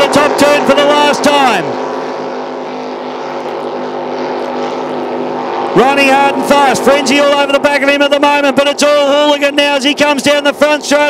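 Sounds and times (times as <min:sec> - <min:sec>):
powerboat engines droning: 0:00.0 - 0:11.0.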